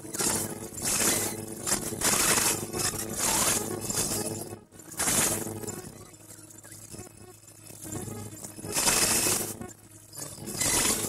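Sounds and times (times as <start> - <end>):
low electronic hum: 0.0 - 11.0.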